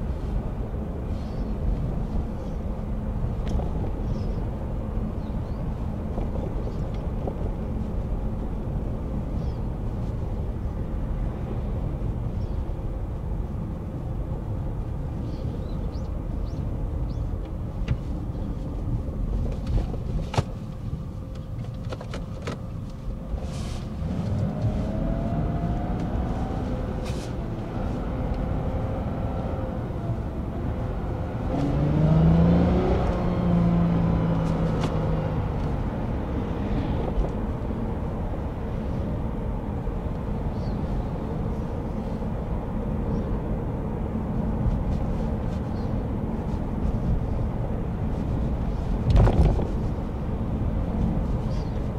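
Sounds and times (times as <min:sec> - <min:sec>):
road and engine rumble in cabin: 0:00.0 - 0:51.9.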